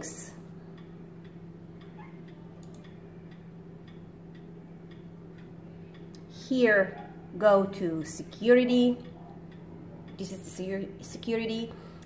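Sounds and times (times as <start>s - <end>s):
faint regular ticking: 0.0s - 12.0s
steady low hum: 0.0s - 12.0s.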